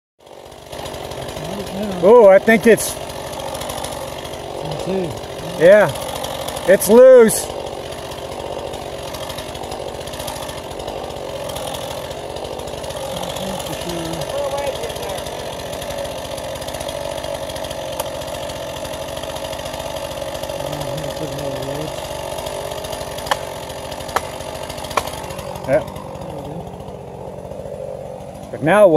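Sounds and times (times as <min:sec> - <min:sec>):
chainsaw engine running: 0:00.2 - 0:28.9
man talking: 0:01.3 - 0:02.9, 0:04.6 - 0:06.0, 0:13.1 - 0:15.6, 0:20.6 - 0:22.0, 0:25.6 - 0:26.7, 0:28.5 - 0:28.9.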